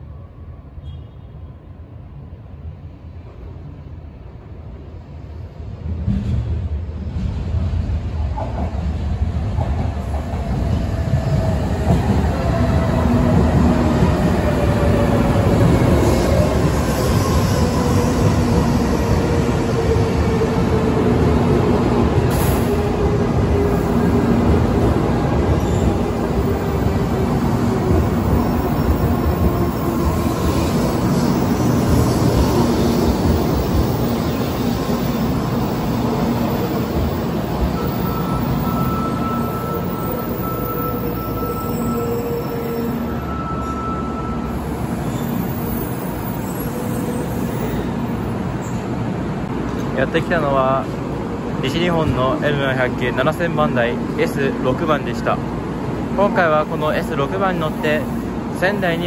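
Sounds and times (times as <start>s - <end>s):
train rumbling: 2.1s - 59.0s.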